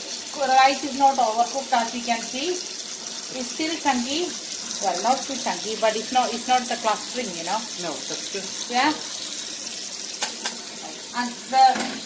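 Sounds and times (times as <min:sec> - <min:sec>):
tap running into steel sink: 0:11.7 - 0:12.0.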